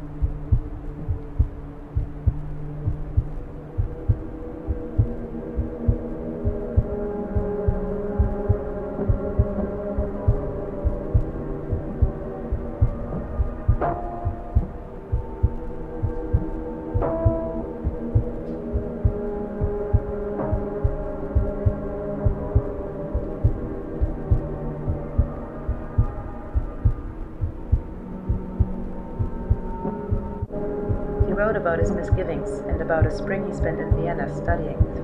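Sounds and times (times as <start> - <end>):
sustained drone tones: 0.0 - 35.0
heartbeat-like thumps: 0.1 - 35.0.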